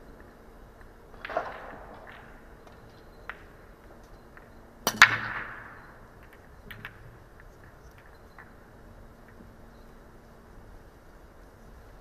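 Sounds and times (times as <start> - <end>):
pool balls clicking together: 0.2 - 8.6
pool balls clattering apart: 1.2 - 8.6.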